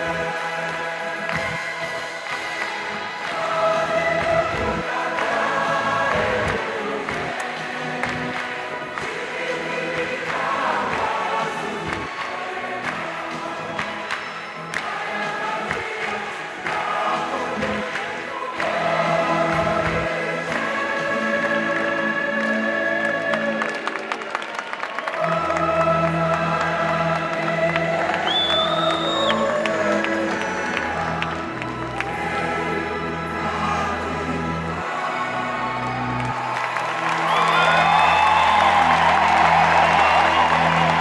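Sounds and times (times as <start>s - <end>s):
choir singing gospel with accompaniment: 0.0s - 24.2s, 25.0s - 41.0s.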